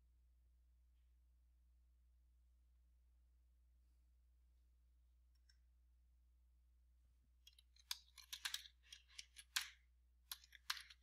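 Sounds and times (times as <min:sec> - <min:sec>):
keyboard typing: 0:07.5 - 0:11.0.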